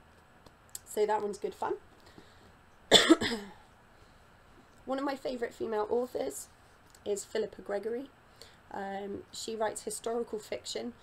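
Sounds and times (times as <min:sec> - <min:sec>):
woman coughing: 0:02.9 - 0:03.6.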